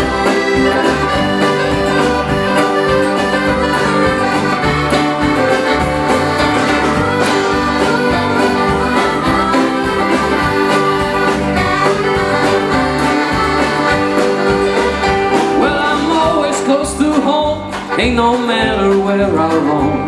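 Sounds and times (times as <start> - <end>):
fiddle: 0.0 - 18.3
accordion: 0.0 - 20.0
drums: 0.0 - 20.0
strummed acoustic guitars: 0.0 - 20.0
upright bass: 0.0 - 20.0.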